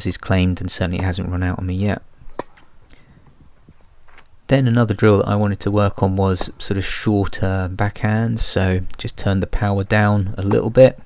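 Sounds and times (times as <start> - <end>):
faint outdoor hush: 0.0 - 11.0.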